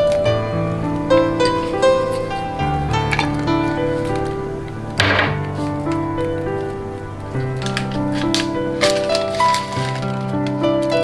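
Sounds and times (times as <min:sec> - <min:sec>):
background music melody: 0:00.0 - 0:11.0.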